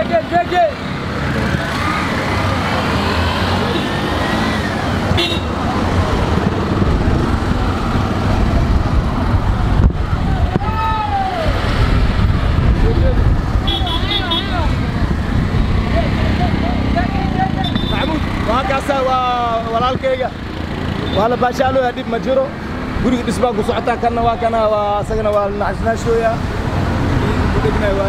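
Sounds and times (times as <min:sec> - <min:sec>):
voices calling out: 0:00.0 - 0:06.5, 0:07.4 - 0:28.0
auto-rickshaw engines running: 0:00.0 - 0:28.0.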